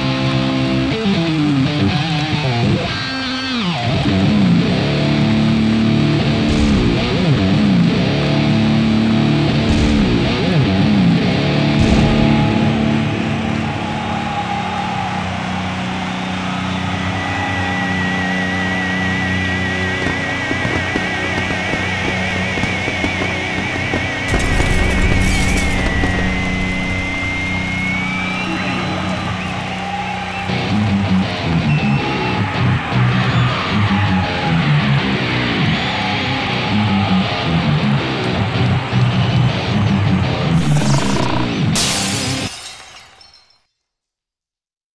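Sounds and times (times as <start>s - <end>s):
electric guitar rock music: 0.0s - 13.7s, 37.4s - 41.7s
noisy burst: 40.5s - 42.4s.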